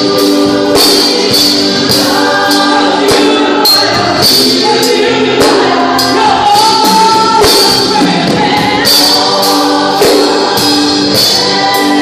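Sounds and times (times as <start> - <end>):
percussion hits: 0.0 - 12.0
voices singing along: 0.0 - 12.0
woman singing lead: 0.0 - 12.0.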